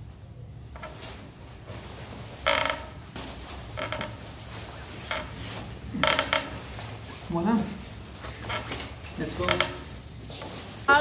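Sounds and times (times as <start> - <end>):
nylon jacket rustling: 0.8 - 11.0.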